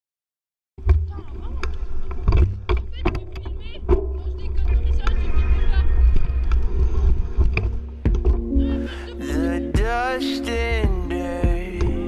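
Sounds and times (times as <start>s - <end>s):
bike knocks and rattles: 0.8s - 4.2s
wind rumbling on microphone: 0.8s - 8.7s
music track: 4.0s - 12.0s.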